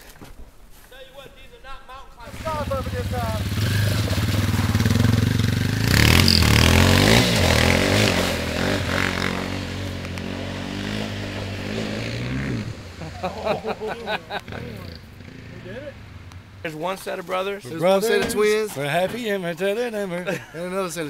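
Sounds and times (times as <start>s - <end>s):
dirt bike engine revving: 2.2s - 16.7s.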